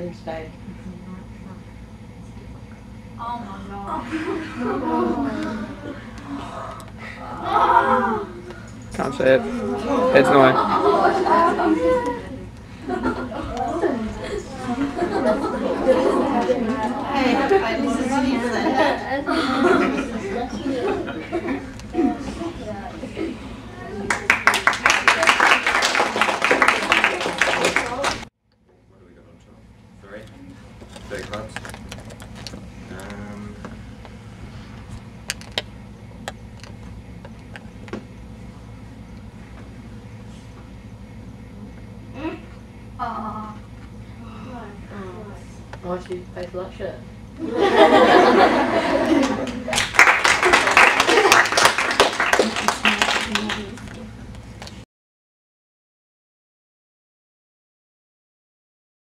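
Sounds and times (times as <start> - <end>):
steady low hum: 0.0 - 54.8
people chattering: 9.0 - 12.5, 13.3 - 25.4.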